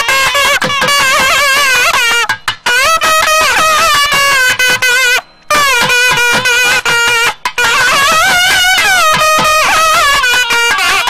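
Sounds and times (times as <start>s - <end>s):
drum strokes: 0.0s - 11.0s
reedy wind instrument melody: 0.0s - 11.0s.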